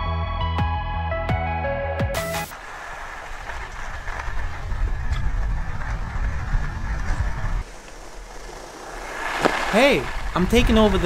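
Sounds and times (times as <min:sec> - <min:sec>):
skis hissing on snow: 0:02.5 - 0:04.7, 0:07.6 - 0:11.0
wind rumbling on microphone: 0:02.5 - 0:11.0.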